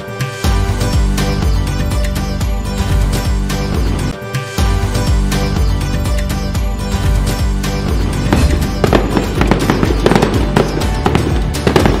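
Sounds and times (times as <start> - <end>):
festive background music: 0.0 - 12.0
firework bangs and crackles: 7.9 - 12.0.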